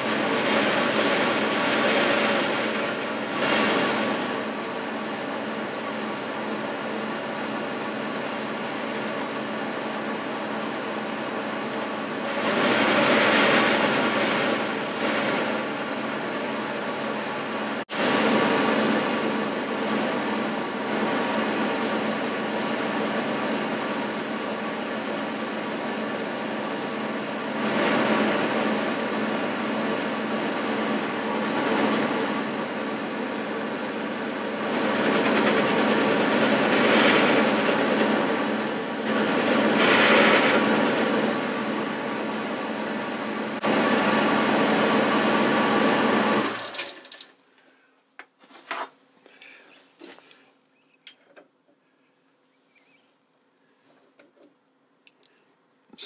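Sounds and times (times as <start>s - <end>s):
metal lathe humming: 0.0s - 46.8s
lathe tool cutting metal: 0.0s - 47.0s.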